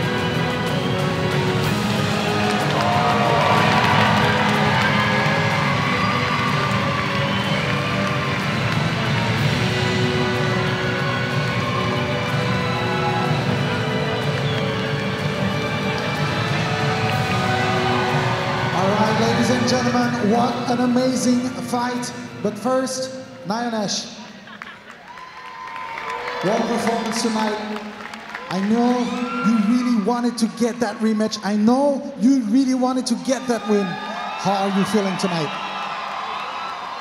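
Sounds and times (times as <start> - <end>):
crowd cheering: 0.0 - 22.8, 24.2 - 37.0
music playing: 0.0 - 36.2.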